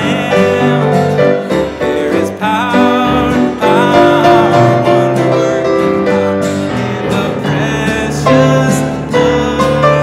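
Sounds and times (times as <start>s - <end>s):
piano and guitar chords: 0.0s - 10.0s.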